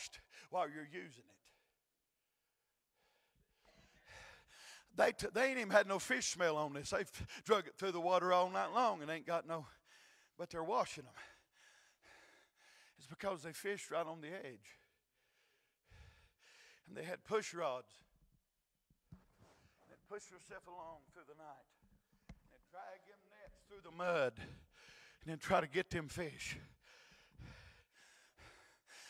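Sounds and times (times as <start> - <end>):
faint breaths into a microphone: 14.7 - 16.9, 19.2 - 20.0, 24.3 - 25.3, 26.4 - 29.0
man breathing into microphone: 26.6 - 29.0.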